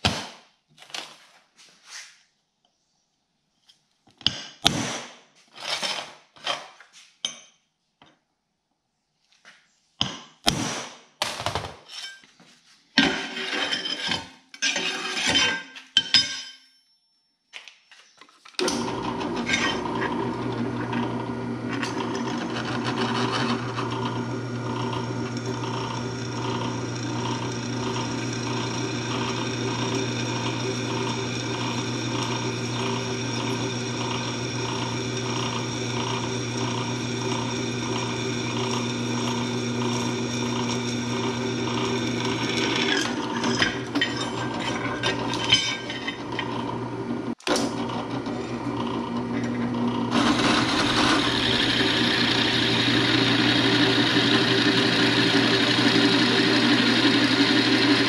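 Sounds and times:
drill bit scraping steel: 13.0s - 15.7s, 18.6s - 58.0s
drill press motor hum: 18.6s - 58.0s.

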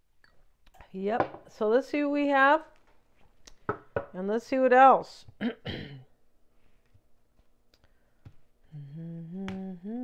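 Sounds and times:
woman humming: 8.6s - 10.0s.

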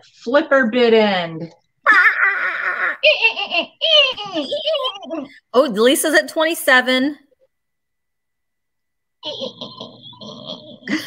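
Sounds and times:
laughter: 1.8s - 5.4s, 9.2s - 11.0s.

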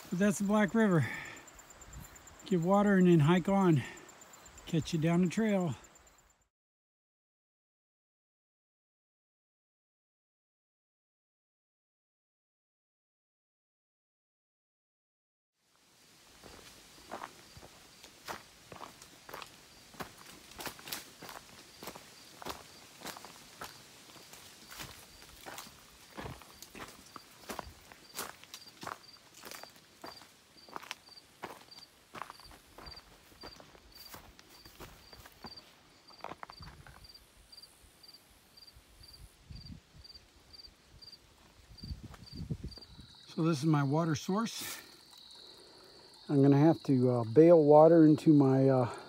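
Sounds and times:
faint high insect call: 0.0s - 6.5s, 15.6s - 49.0s
footsteps on rocky leafy ground: 16.3s - 37.2s, 41.4s - 43.0s.

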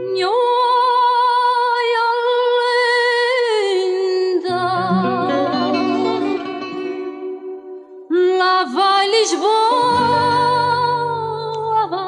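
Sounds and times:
plucked guitar: 3.9s - 12.0s.

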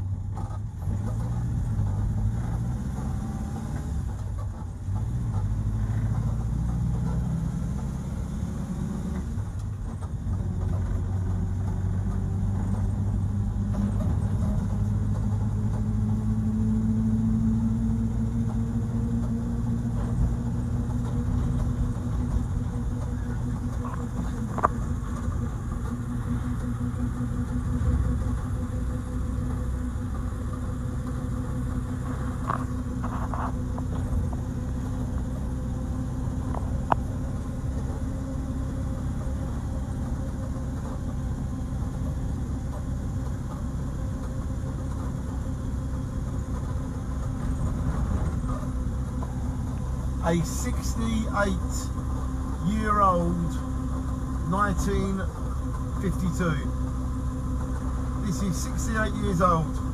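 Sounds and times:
car engine drone: 0.0s - 59.9s
road noise: 0.0s - 59.9s.

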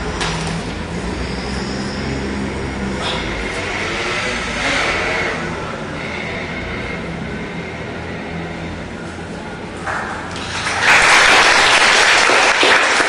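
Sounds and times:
street traffic rumble: 0.0s - 11.1s.

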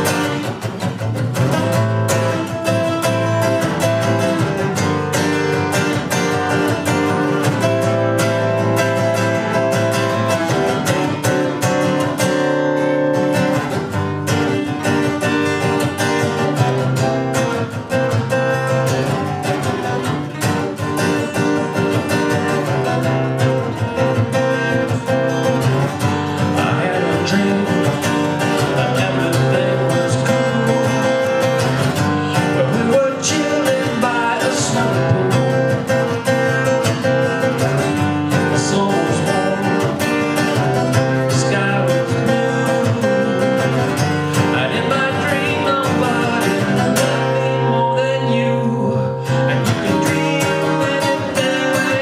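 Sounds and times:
acoustic guitar strumming chords: 0.0s - 52.0s
man singing: 14.3s - 18.7s, 26.3s - 52.0s.

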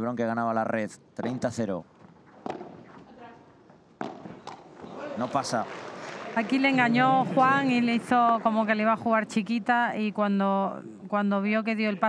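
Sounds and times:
faint court sound: 1.9s - 6.6s
racket hitting ball: 2.3s - 3.1s, 4.0s - 6.2s.

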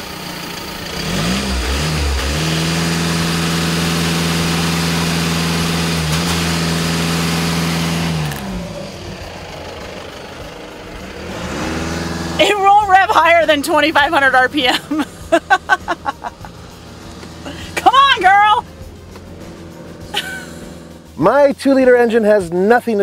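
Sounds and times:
diesel engine revving: 0.0s - 21.9s.

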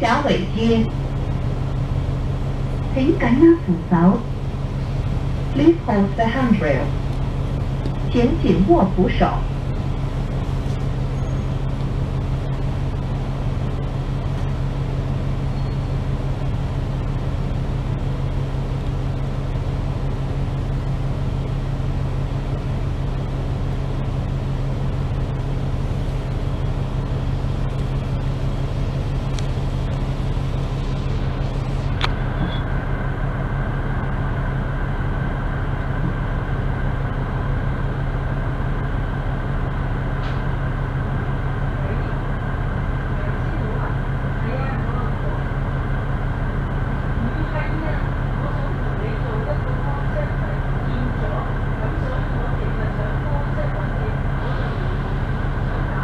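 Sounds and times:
bus engine idling: 0.0s - 56.0s
steady high whine: 0.0s - 56.0s
click: 29.3s - 30.0s, 32.0s - 32.6s.

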